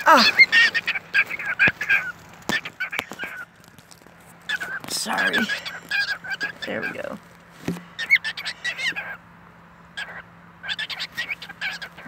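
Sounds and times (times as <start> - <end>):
cockatiel chirping softly: 4.5 - 7.0, 10.0 - 12.0.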